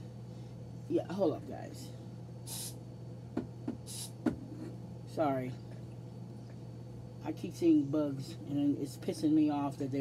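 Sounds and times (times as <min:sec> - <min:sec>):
aerosol spray can hiss: 0:02.5 - 0:02.8, 0:03.8 - 0:04.2.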